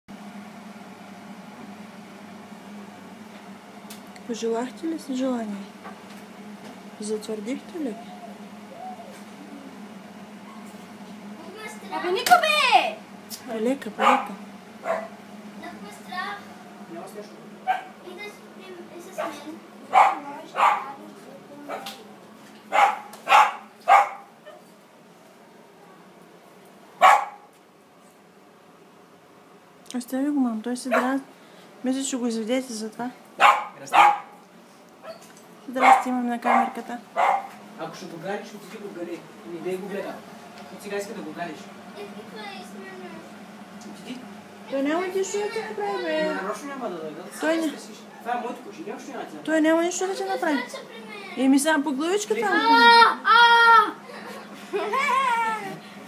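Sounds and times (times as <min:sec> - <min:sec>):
machine hum: 0:00.1 - 0:56.0
dog barking: 0:14.0 - 0:15.2, 0:17.6 - 0:18.0, 0:19.2 - 0:21.0, 0:21.7 - 0:22.0, 0:22.7 - 0:24.6, 0:27.0 - 0:27.5, 0:30.9 - 0:31.2, 0:33.4 - 0:34.4, 0:35.0 - 0:37.6.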